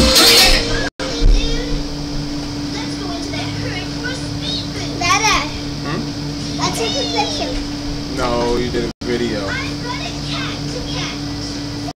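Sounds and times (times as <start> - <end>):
steady hum: 0.0 - 11.9
young children chattering: 6.6 - 7.6.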